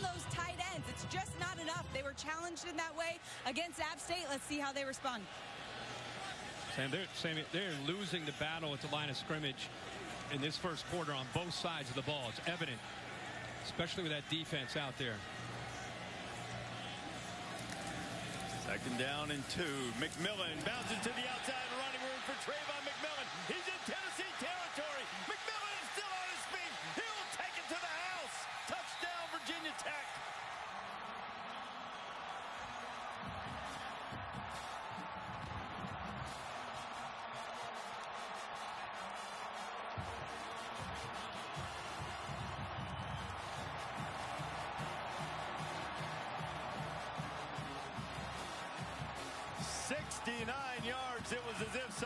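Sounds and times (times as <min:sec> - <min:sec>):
stadium crowd roar: 0:00.0 - 0:52.0.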